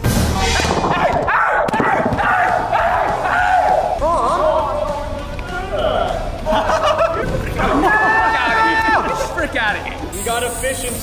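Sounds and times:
background music: 0.0 - 10.6
people shouting excitedly: 0.4 - 6.5, 7.5 - 9.4.

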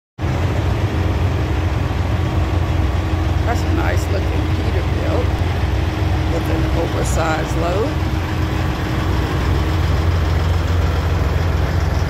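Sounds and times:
diesel engine idling: 0.2 - 12.0.

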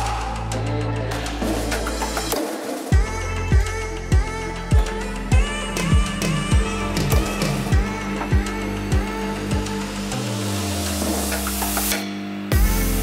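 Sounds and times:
rising hiss: 0.0 - 2.9
music with kick-drum beat: 0.0 - 13.0.

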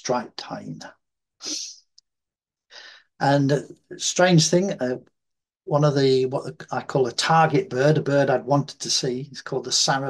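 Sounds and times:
man breathing: 2.7 - 3.2.

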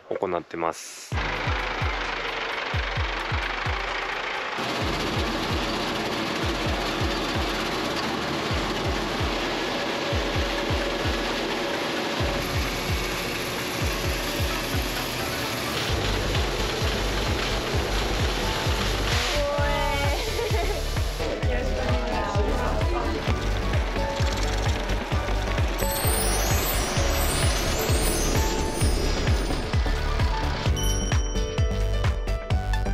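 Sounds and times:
background music: 1.1 - 32.9
threshing machinery clattering: 2.1 - 30.7.

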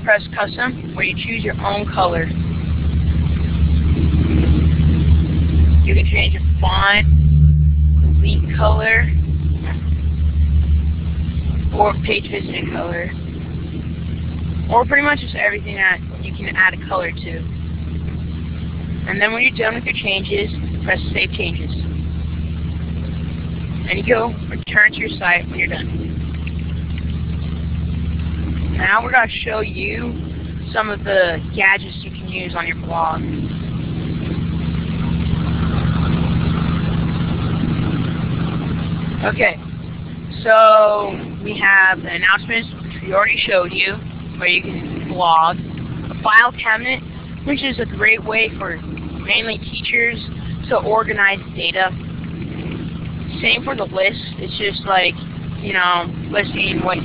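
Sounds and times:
person speaking: 0.0 - 2.4, 5.8 - 7.1, 8.1 - 9.8, 11.6 - 13.2, 14.6 - 17.5, 19.0 - 21.9, 23.8 - 25.9, 28.7 - 33.5, 39.2 - 39.6, 40.3 - 52.0, 53.3 - 57.0
loud low hum: 0.0 - 57.0.

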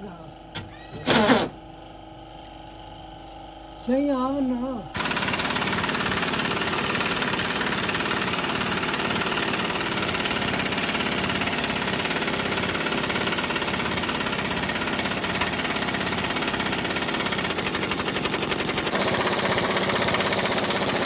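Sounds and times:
impact wrench hammering: 5.0 - 21.0.

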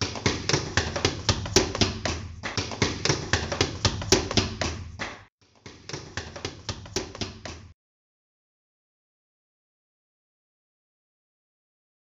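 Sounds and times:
rapid sharp taps: 0.0 - 7.8.

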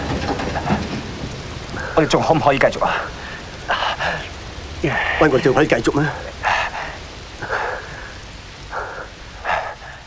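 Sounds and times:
steady rain: 0.0 - 10.0
person speaking: 2.0 - 6.4.

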